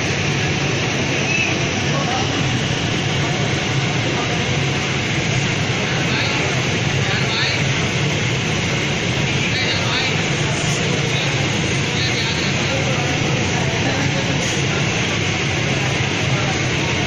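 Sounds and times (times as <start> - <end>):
steam iron hum and hiss: 0.0 - 17.0.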